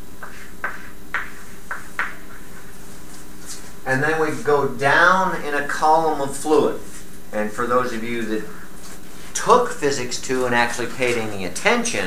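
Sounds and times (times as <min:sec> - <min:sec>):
low room hum: 0:00.0 - 0:12.0
chalk tapping and scraping: 0:00.2 - 0:03.7.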